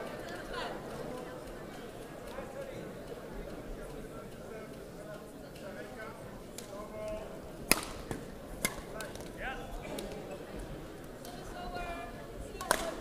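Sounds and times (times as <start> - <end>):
murmur of sports hall: 0.0 - 13.0
rackets hitting shuttlecock: 6.6 - 9.3, 12.6 - 13.0.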